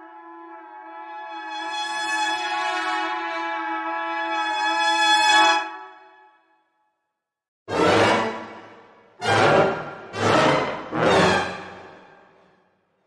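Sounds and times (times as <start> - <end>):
held orchestral brass: 0.0 - 5.8, 7.7 - 12.6.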